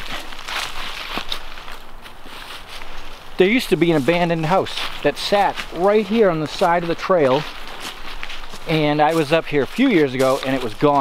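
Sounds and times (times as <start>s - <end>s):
footsteps through dry leaves: 0.0s - 11.0s.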